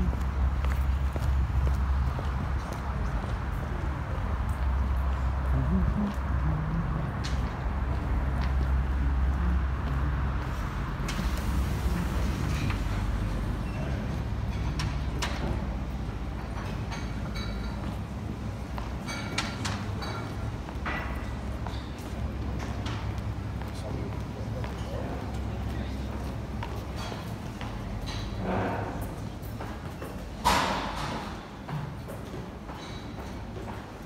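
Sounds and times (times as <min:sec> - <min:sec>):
low outdoor rumble: 0:00.0 - 0:19.1.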